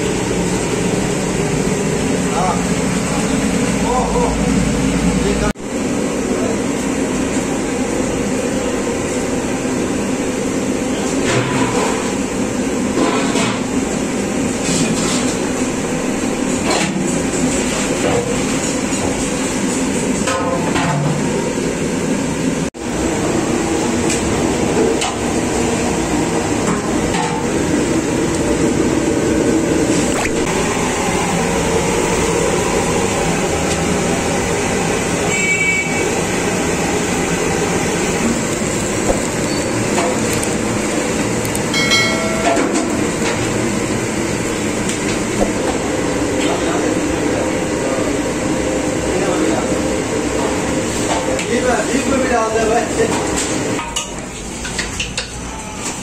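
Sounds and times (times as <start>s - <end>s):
gas burners rushing: 0.0s - 56.0s.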